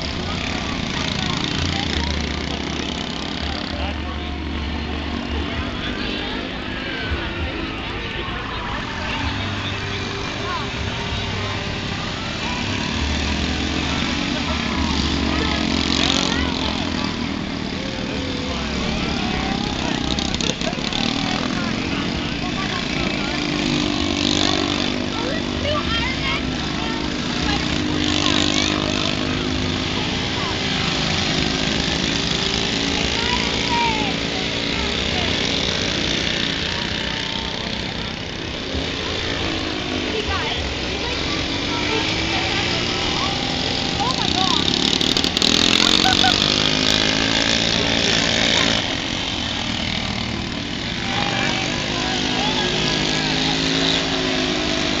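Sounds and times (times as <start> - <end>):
mini bike engines running: 0.0 - 55.0.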